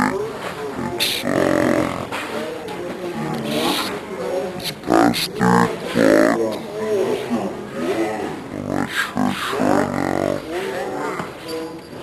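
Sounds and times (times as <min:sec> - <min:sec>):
pitch-shifted warped voices: 0:00.0 - 0:02.2, 0:03.1 - 0:06.7, 0:07.3 - 0:11.2.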